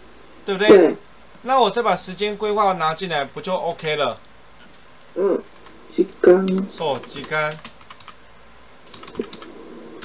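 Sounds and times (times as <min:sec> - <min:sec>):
computer keyboard typing: 0:06.4 - 0:08.2, 0:08.9 - 0:09.5.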